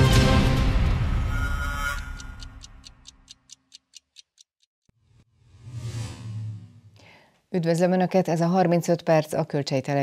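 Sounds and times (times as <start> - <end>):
television theme music: 0.0 - 3.1
clock-like ticks: 1.9 - 4.7.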